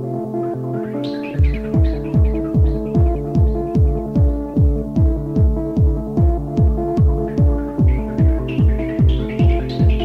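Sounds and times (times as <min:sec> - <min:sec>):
deep kick drum: 0:01.4 - 0:10.0.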